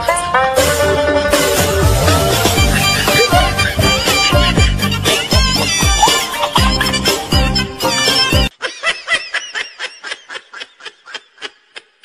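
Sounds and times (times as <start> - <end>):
person laughing: 2.2 - 7.4, 8.5 - 12.0.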